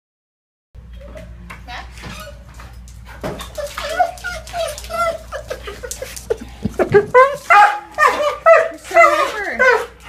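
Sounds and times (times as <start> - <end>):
dog whining and yelping: 3.4 - 5.8, 7.0 - 9.9.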